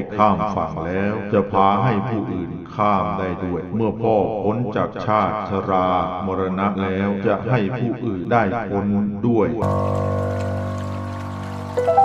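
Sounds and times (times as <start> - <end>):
soft new-age music: 9.6 - 12.0
trickling water: 9.6 - 12.0.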